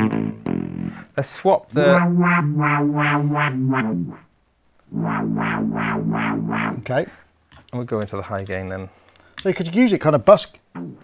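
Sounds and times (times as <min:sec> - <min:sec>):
repeated low synth notes: 0:00.0 - 0:01.1, 0:01.8 - 0:04.3, 0:04.9 - 0:06.9.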